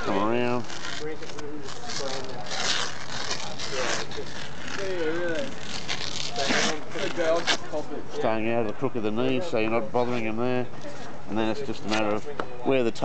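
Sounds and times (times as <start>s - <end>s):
bandage ripping off roll: 0.0s - 7.8s.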